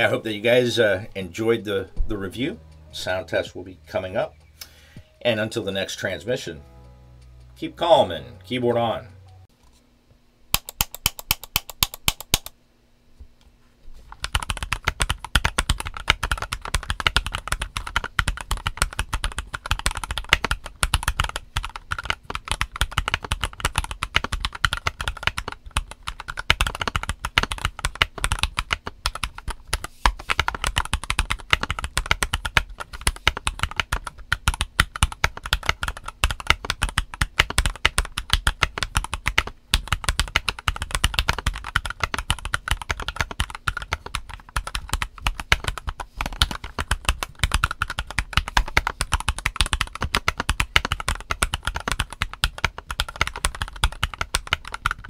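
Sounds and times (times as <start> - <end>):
mechanical keyboard typing: 10.6 - 12.5, 14.1 - 55.0.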